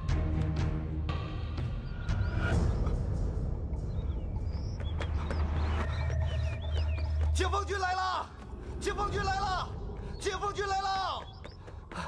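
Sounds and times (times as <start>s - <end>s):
bird chirps: 1.2s - 8.0s, 8.8s - 12.0s.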